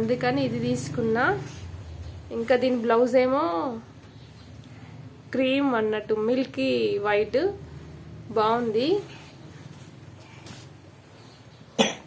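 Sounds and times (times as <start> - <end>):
soft hiss of noise: 7.6 - 11.6
woman coughing: 11.8 - 12.0.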